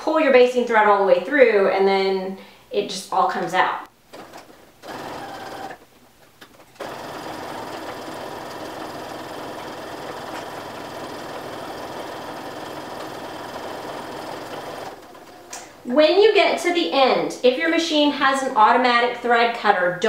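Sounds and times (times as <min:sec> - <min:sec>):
electric sewing machine running: 0:04.8 - 0:05.8, 0:06.8 - 0:15.8.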